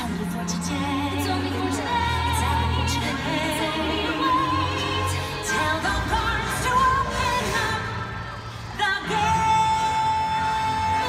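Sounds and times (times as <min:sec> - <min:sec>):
woman singing show tune: 0:00.0 - 0:11.0.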